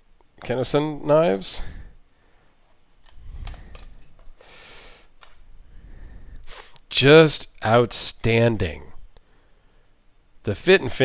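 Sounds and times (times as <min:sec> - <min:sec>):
breathy exhale: 0:03.2 - 0:06.8
quick intake of breath: 0:03.2 - 0:06.8.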